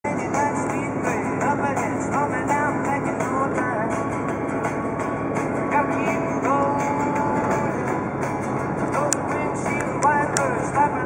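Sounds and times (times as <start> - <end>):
music with sliding melody: 0.1 - 11.0.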